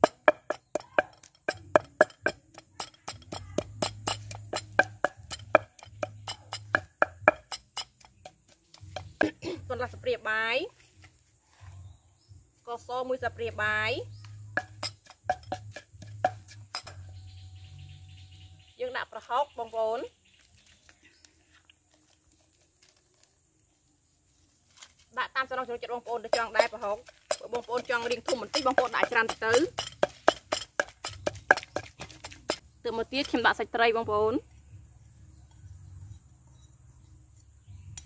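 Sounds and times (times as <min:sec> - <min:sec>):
utensils clinking on clay mortar: 0:00.0 - 0:10.0, 0:14.1 - 0:17.2, 0:25.9 - 0:33.6.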